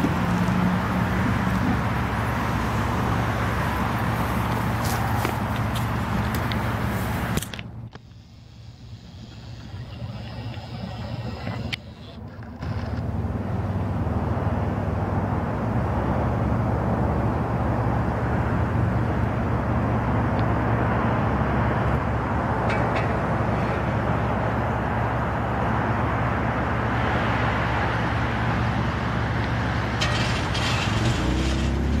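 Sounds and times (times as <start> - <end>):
traffic rumble: 0.0 - 32.0.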